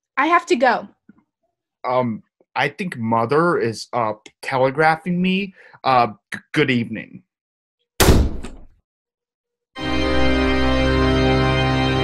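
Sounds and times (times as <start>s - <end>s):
door slamming shut: 8.0s - 8.7s
organ music: 9.8s - 12.0s.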